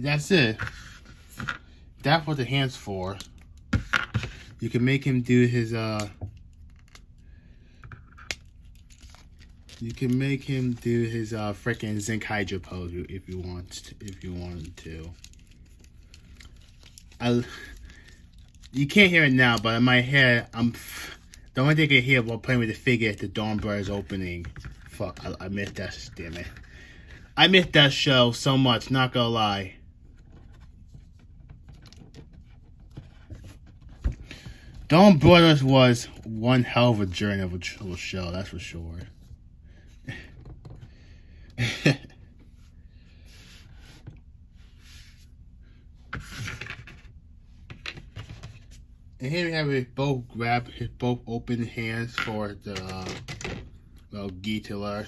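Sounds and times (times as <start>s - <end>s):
plastic figure handling scratches: 0.3s - 1.7s.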